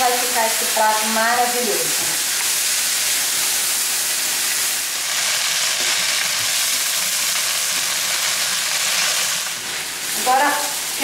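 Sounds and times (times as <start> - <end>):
food sizzling in a frying pan: 0.0 - 11.0.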